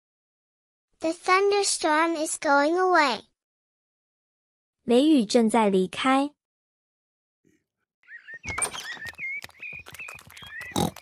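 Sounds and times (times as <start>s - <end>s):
high wavering chirp: 8.0s - 10.8s.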